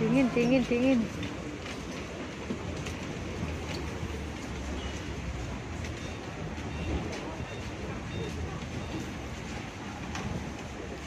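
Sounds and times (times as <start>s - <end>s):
crowd noise: 0.0s - 11.0s
faint footsteps: 0.0s - 11.0s
traffic hum: 0.0s - 11.0s.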